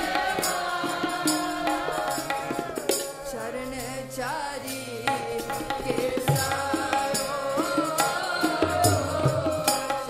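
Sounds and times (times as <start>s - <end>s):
tabla beating: 0.0s - 3.9s, 4.8s - 10.0s
harmonium chords: 0.0s - 10.0s
women singing together: 0.0s - 10.0s.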